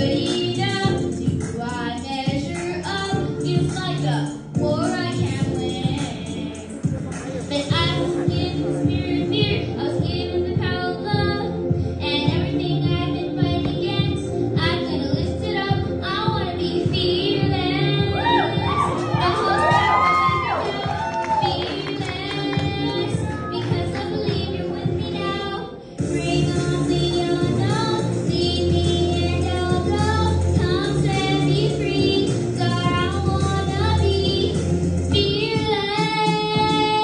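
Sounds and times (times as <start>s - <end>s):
backing track: 0.0s - 37.0s
girl singing a long belted note: 7.5s - 37.0s
audience cheering: 18.1s - 23.4s.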